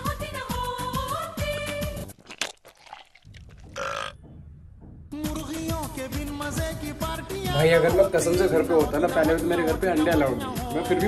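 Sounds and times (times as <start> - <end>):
throaty vocal grunt: 3.6 - 4.2.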